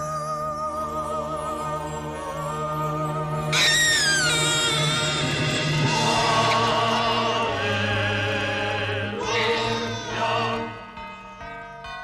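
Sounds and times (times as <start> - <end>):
choir singing held notes: 0.9 - 11.0.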